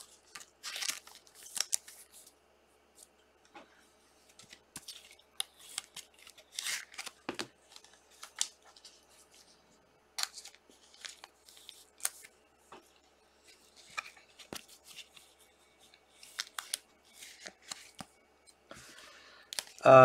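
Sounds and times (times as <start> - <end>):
plastic sleeves rustling and crinkling: 0.0 - 2.4, 4.2 - 9.6, 10.2 - 19.9.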